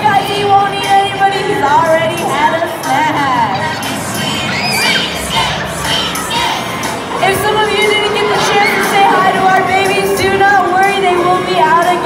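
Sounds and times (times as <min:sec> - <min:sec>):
children shouting and shrieking: 0:03.4 - 0:10.0
high squeals: 0:03.8 - 0:06.8
cheering: 0:07.2 - 0:10.3.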